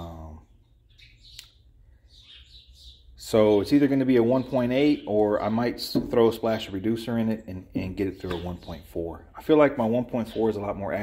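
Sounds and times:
faint bird chirps: 0.0s - 5.3s.

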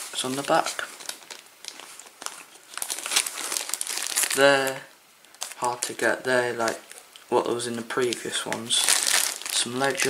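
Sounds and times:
plastic wrapping crinkling: 0.0s - 10.0s.

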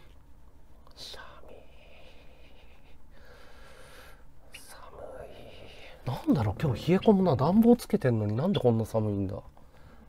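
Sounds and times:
faint whispering: 0.8s - 3.0s, 4.4s - 7.3s.

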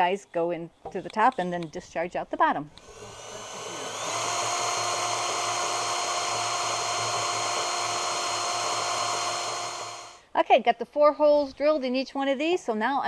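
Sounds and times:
cordless drill boring through plastic: 2.8s - 10.2s.

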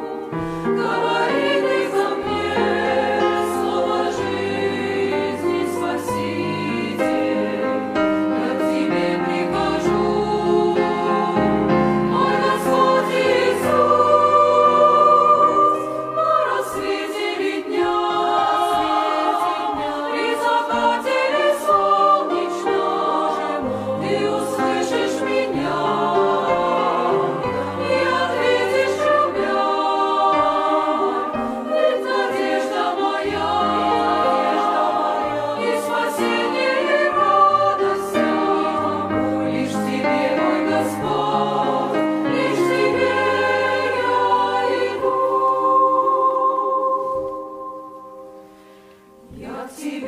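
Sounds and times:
grand piano accompaniment: 0.0s - 49.7s
women's choir singing a hymn: 0.0s - 50.0s.

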